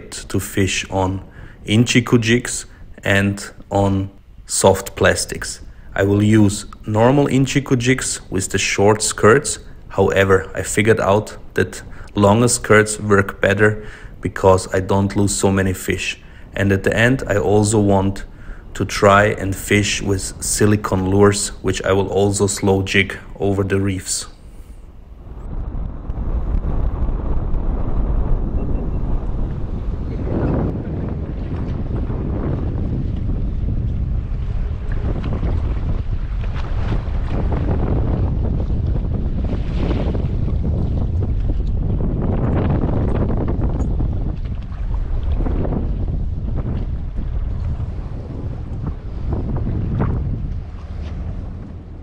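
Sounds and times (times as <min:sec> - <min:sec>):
waves washing: 0:00.0 - 0:25.4, 0:29.2 - 0:52.0
wind buffeting microphone: 0:00.0 - 0:52.0.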